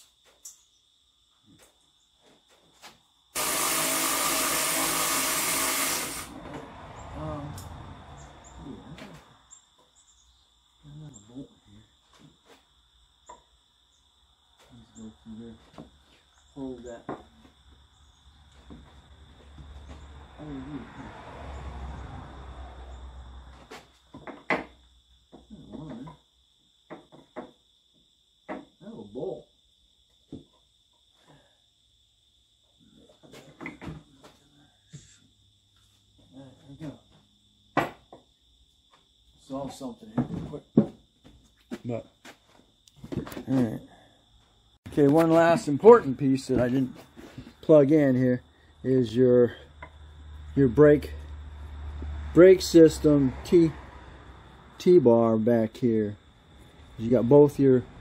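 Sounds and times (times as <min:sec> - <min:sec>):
cordless power tool running: 0:03.4 - 0:06.4.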